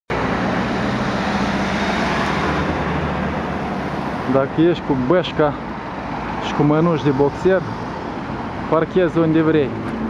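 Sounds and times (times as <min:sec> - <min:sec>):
city street traffic: 0:00.1 - 0:10.0.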